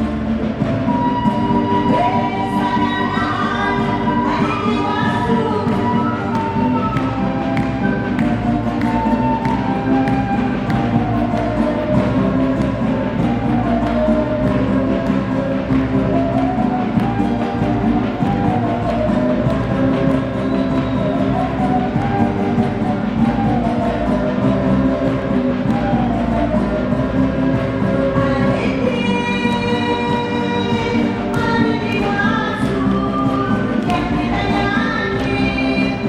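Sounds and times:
strummed guitars: 0:00.0 - 0:36.0.

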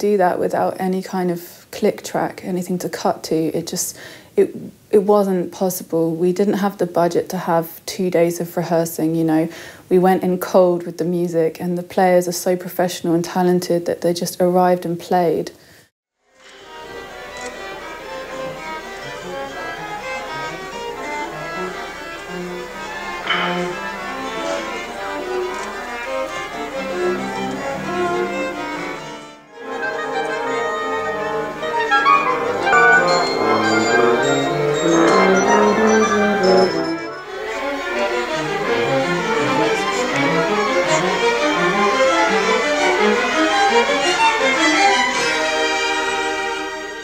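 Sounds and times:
orchestra strings playing: 0:16.4 - 0:47.0.

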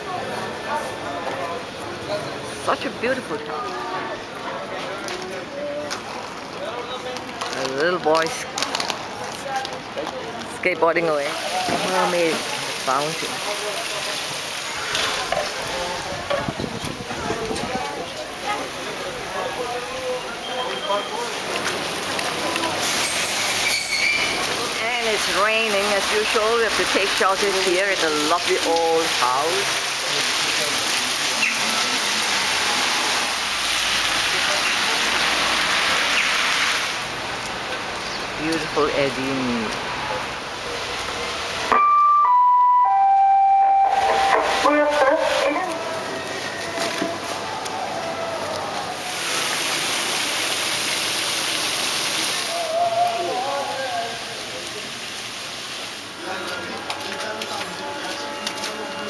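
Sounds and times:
passers-by talking: 0:00.0 - 0:41.8, 0:43.8 - 0:49.5, 0:52.1 - 0:59.0
outdoor noise: 0:00.0 - 0:59.0
rain hiss: 0:11.0 - 0:41.7, 0:48.4 - 0:59.0
three-note descending chime: 0:41.7 - 0:44.5.

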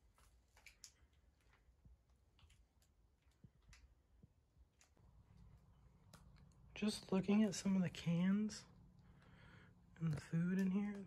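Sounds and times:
soft scattered clicks: 0:08.9 - 0:11.0.

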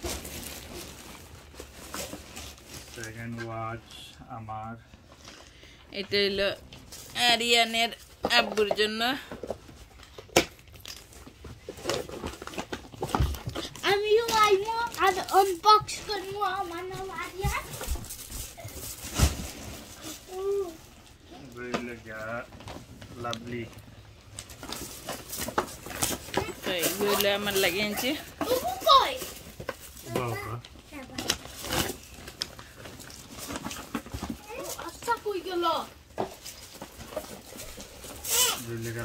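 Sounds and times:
handling knocks and rustles: 0:08.0 - 0:23.7, 0:24.3 - 0:39.0.

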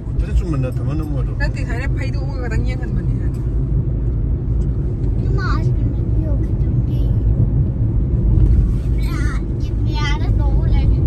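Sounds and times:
car rumble from inside cabin: 0:00.0 - 0:11.0.

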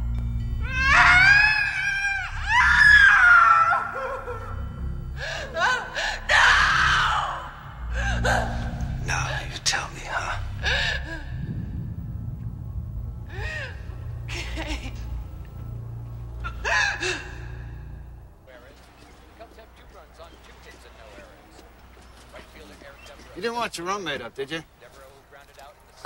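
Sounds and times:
low droning film score: 0:00.0 - 0:26.0
woman screaming and crying: 0:00.6 - 0:04.5.

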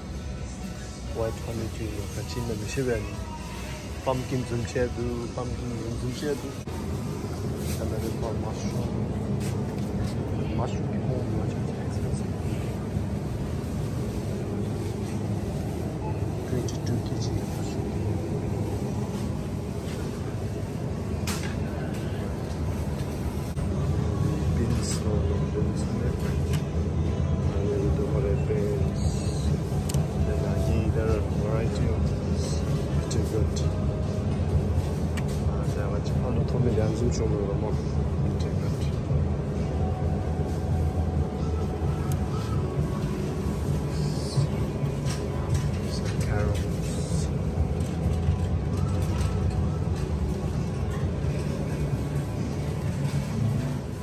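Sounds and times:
faint voices: 0:00.0 - 0:54.0
steady low rumble: 0:00.0 - 0:54.0.

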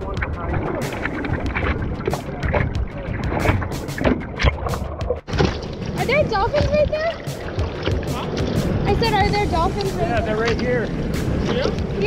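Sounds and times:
seawater splashing over surfboard: 0:00.0 - 0:12.0.

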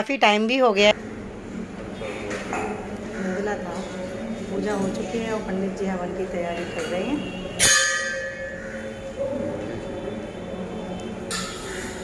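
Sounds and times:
steady low hum: 0:00.9 - 0:11.3
struck brass ringing: 0:06.5 - 0:09.1.

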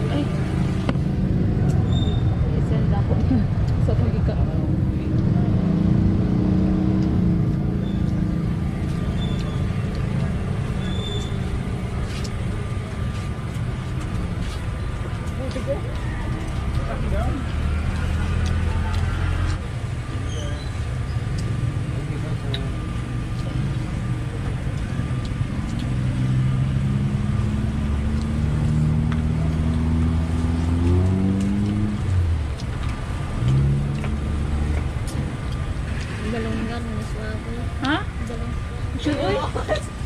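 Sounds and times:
background chatter: 0:00.0 - 0:06.2, 0:07.2 - 0:33.8, 0:34.8 - 0:40.0
vehicle engines running: 0:00.0 - 0:40.0.

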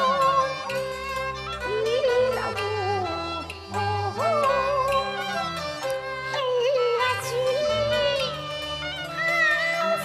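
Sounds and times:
opera music with wavering melody: 0:00.0 - 0:10.0.

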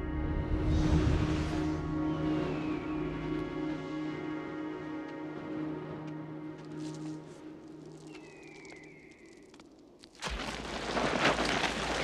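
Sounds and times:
low musical hum: 0:00.0 - 0:08.8.

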